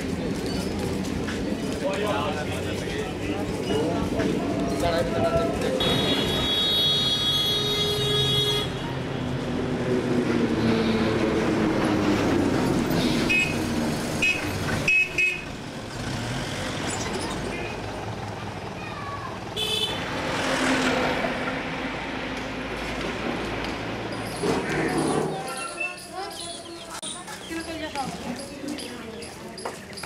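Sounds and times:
voices: 0.0s - 6.7s, 16.8s - 20.1s, 24.2s - 30.0s
engines: 0.0s - 30.0s
vehicle horn: 5.8s - 8.9s, 14.2s - 15.5s, 19.6s - 20.0s.

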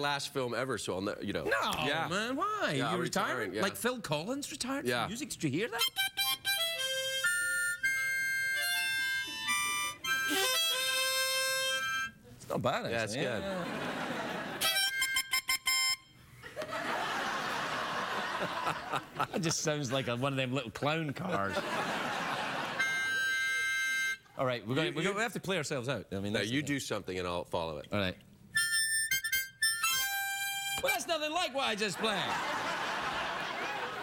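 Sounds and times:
harmonica chord blasts: 5.7s - 12.3s, 14.6s - 16.3s, 22.7s - 24.3s, 28.6s - 31.0s
audience laughter: 13.4s - 14.6s, 16.4s - 20.2s, 21.1s - 23.0s, 31.8s - 34.0s.

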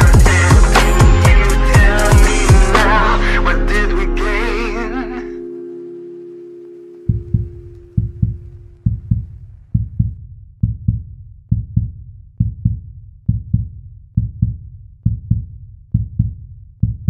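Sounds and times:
heartbeat thumps: 0.0s - 2.7s, 7.0s - 17.0s
held musical tone: 0.0s - 9.3s.

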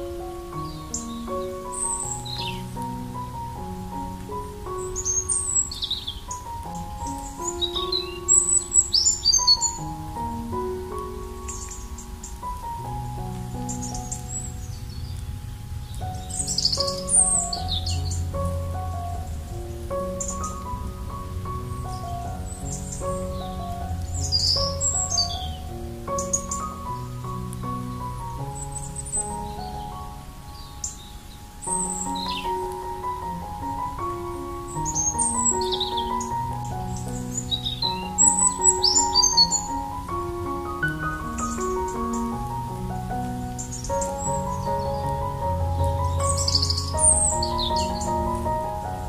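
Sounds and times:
soft piano music: 0.0s - 49.0s
songbirds chirping: 0.0s - 49.0s.

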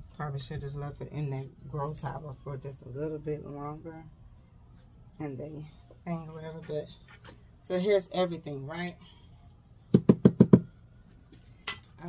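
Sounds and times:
hand tool knocking on wood: 10.0s - 10.7s.

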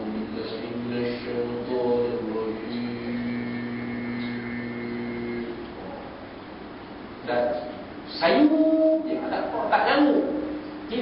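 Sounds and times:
man singing a long note: 0.0s - 5.7s, 8.2s - 9.3s.

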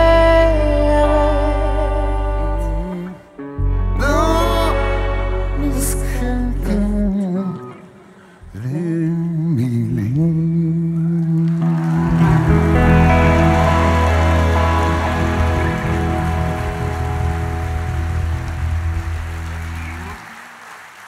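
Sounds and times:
live band holding final chord: 11.7s - 20.4s.

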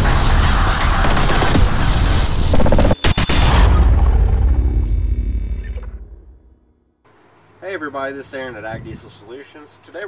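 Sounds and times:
deep low boom rumbling: 3.4s - 6.8s.

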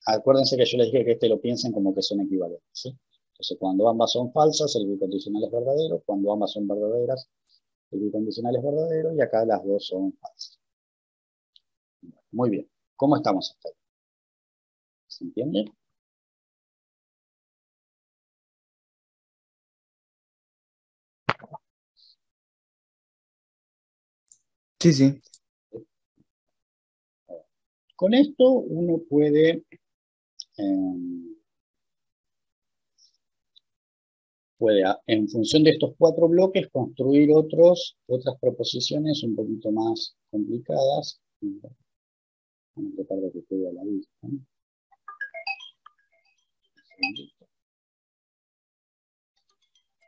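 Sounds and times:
sharp pop: 21.3s - 21.6s.

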